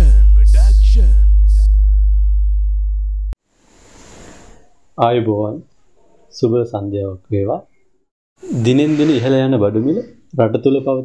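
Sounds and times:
deep sustained bass tone: 0.0 - 3.4.

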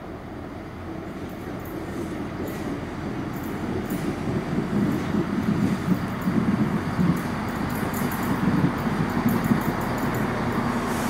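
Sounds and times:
diesel train rumbling: 0.0 - 11.0
wheels on rails: 1.1 - 11.0.

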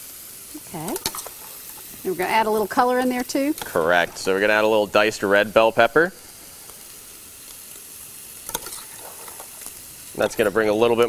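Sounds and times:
pans sizzling on stovetop: 0.0 - 11.0.

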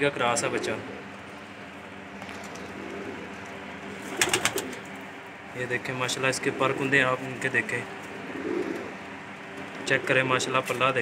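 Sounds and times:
pigeons cooing softly: 0.0 - 11.0
rustling and clicking of handling: 2.2 - 3.6.

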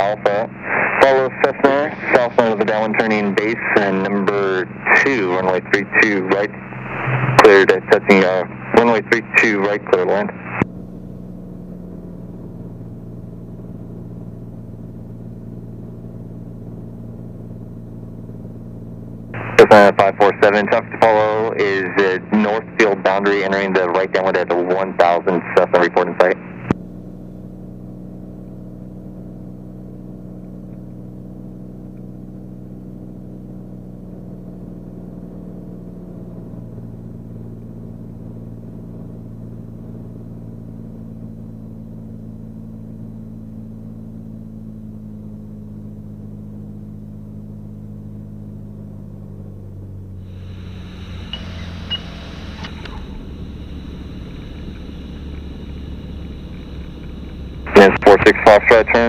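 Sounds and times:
propeller engine drone: 0.0 - 59.0
brief sharp sound: 6.8 - 7.7.

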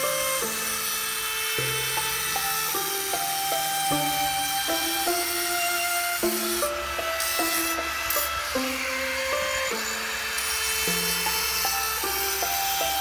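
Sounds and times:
slow melody of held notes: 0.0 - 13.0.

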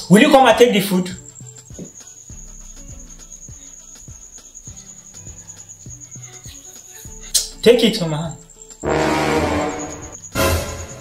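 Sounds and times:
music with bass beat: 1.1 - 11.0
high pulsing trill: 8.8 - 11.0.

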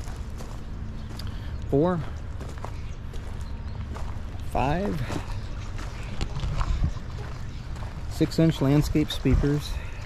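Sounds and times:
footsteps on wood mulch: 0.0 - 10.0
steady low rumble: 0.0 - 10.0.

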